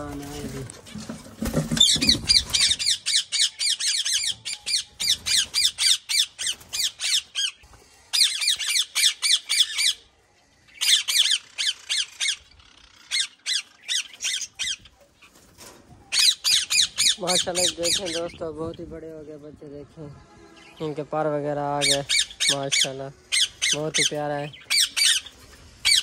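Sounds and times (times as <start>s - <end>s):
parakeets squawking: 1.4s - 10.1s, 10.7s - 15.5s, 16.1s - 18.5s, 21.6s - 26.0s.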